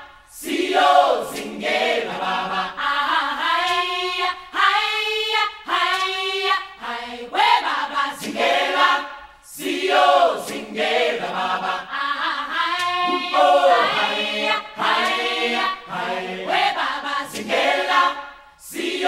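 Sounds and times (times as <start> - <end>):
choir singing chant-like song: 0.0 - 19.0.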